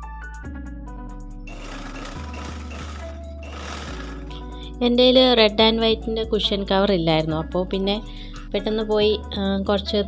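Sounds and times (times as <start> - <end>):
soft background music: 0.0 - 10.0
sewing machine stitching: 1.5 - 4.5.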